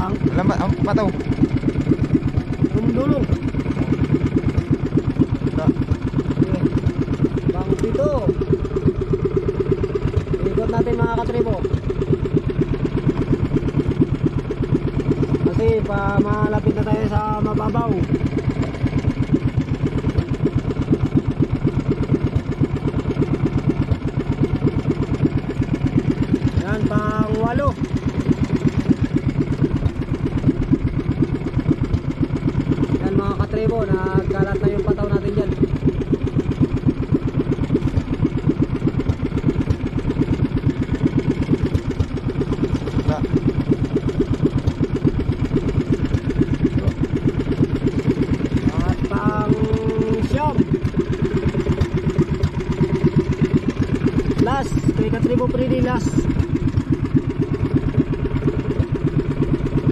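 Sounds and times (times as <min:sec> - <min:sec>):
small boat engine chugging: 0:00.0 - 0:59.9.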